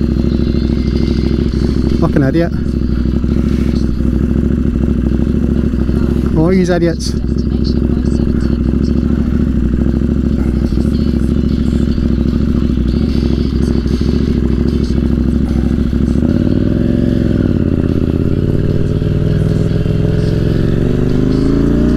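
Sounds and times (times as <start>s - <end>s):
motorcycle engine accelerating: 0.0s - 21.9s.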